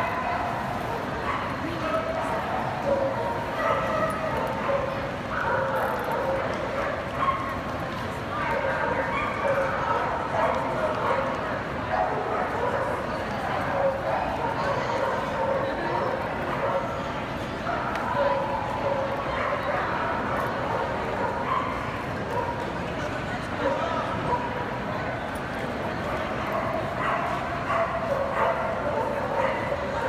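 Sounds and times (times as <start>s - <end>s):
crowd chatter: 0.0s - 30.0s
dogs barking and yipping: 2.2s - 7.6s, 26.5s - 30.0s.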